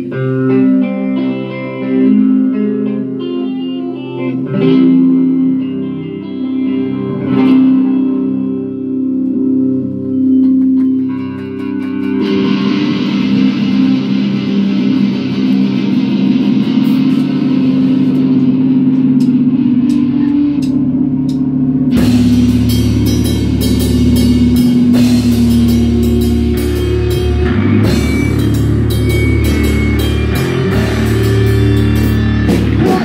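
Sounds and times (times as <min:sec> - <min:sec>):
bass guitar: 0:00.0 - 0:33.0
distorted electric guitar chords: 0:00.0 - 0:33.0
drum kit: 0:10.0 - 0:33.0.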